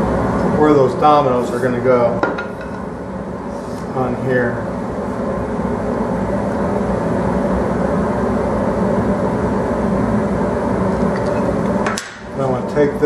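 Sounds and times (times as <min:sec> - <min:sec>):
machine droning hum: 0:00.0 - 0:13.0.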